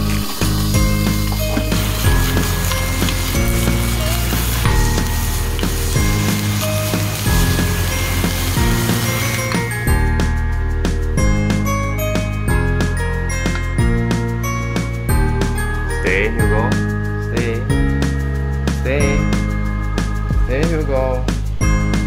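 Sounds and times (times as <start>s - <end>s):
meat sizzling in a pan: 0.0s - 9.9s
background music: 0.0s - 22.0s.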